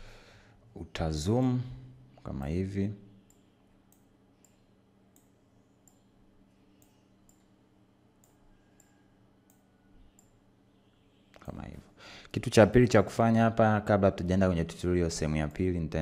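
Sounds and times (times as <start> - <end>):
faint computer mouse clicks: 8.2 - 8.9.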